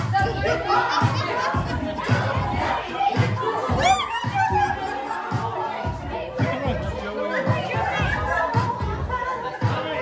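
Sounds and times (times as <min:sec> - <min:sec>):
crowd shouting and cheering: 0:00.0 - 0:10.0
music with steady beat: 0:00.0 - 0:10.0.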